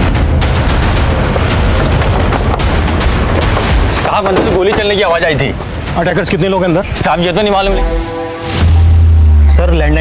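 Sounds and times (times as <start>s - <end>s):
booming percussion hits: 0.0s - 6.0s
dense dramatic music bed: 0.0s - 10.0s.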